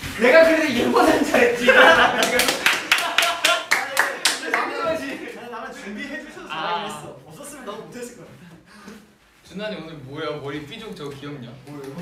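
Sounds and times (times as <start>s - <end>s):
people clapping: 0.5s - 5.4s
people laughing: 0.9s - 6.3s.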